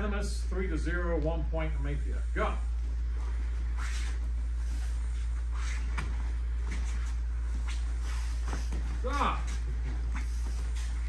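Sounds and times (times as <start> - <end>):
low hum: 0.0 - 11.0
scuffs and hits on foam mats: 3.7 - 11.0.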